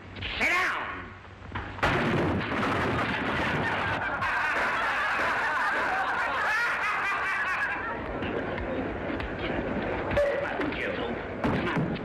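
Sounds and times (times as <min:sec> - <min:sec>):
people laughing and yelling: 0:03.2 - 0:09.0.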